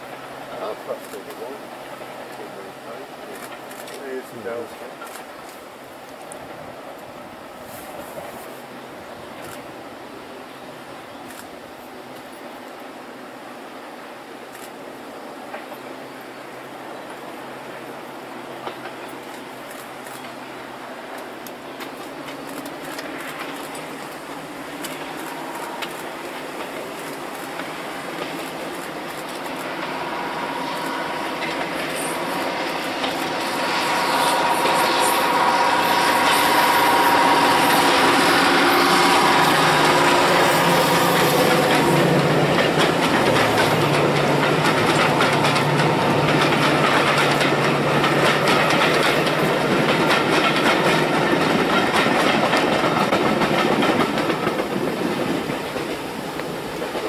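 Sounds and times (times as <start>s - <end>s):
clickety-clack of train wheels: 0.0s - 6.6s, 7.7s - 8.5s, 9.3s - 9.7s, 15.4s - 15.9s, 17.1s - 57.0s
diesel locomotive engine: 0.0s - 57.0s.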